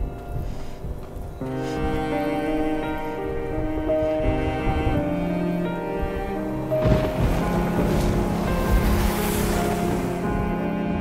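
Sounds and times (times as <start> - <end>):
dramatic orchestral music: 0.1 - 11.0
wind-like whoosh: 2.9 - 11.0.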